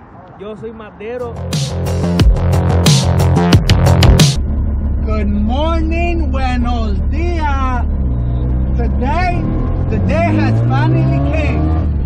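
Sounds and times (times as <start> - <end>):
steady low tone: 1.3 - 10.0
rotary engine droning: 1.4 - 12.0.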